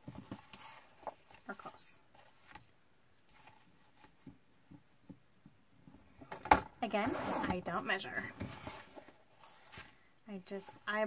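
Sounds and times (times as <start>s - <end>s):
person speaking: 6.8s - 8.4s.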